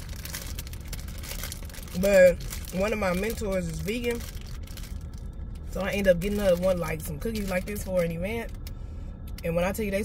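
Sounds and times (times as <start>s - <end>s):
plastic bag crinkling: 0.0s - 8.7s
car cabin rumble: 0.0s - 10.0s.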